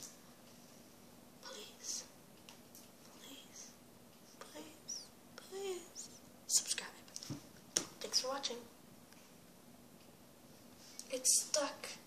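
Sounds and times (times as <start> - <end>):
girl whispering: 1.4 - 2.2, 3.0 - 7.1, 11.0 - 12.0.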